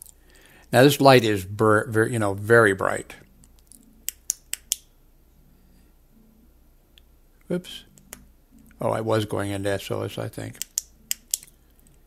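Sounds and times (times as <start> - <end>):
flashlight switch clicks: 10.6 - 11.5.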